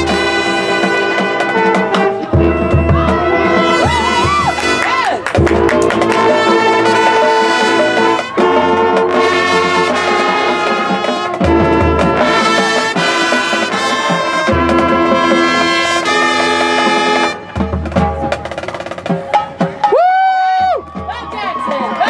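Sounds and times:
low brass: 0:00.0 - 0:18.6
marching band brass chords: 0:00.0 - 0:22.0
percussion hits: 0:00.0 - 0:22.0.

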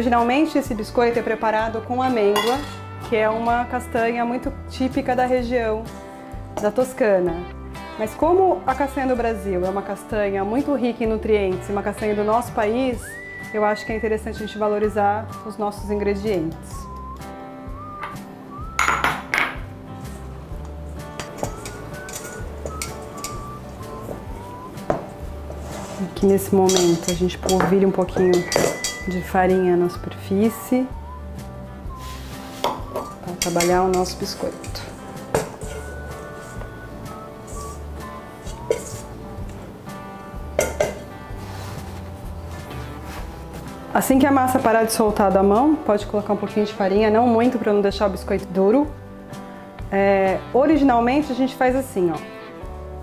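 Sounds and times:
light melodic background music: 0:00.0 - 0:53.0
utensils clinking in metal bowl: 0:02.3 - 0:02.9, 0:20.6 - 0:29.6, 0:32.6 - 0:39.6, 0:40.6 - 0:41.1
metal bowl knocking on wooden board: 0:18.8 - 0:19.7, 0:24.9 - 0:25.2, 0:40.6 - 0:41.1.

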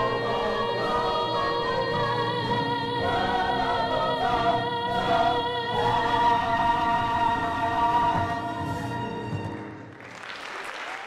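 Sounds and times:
ensemble chorus singing: 0:00.0 - 0:09.6.

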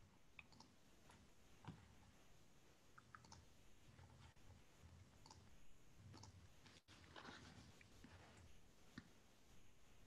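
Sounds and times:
small clicks: 0:00.4 - 0:00.8, 0:03.0 - 0:03.5.

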